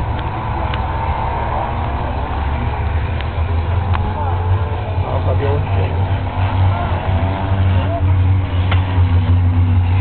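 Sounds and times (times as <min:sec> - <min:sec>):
distant race cars: 0:00.0 - 0:10.0
low rumble: 0:00.0 - 0:10.0.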